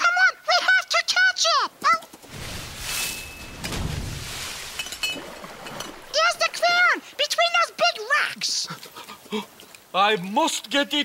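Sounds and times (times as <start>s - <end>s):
light clinks: 4.7s - 6.1s.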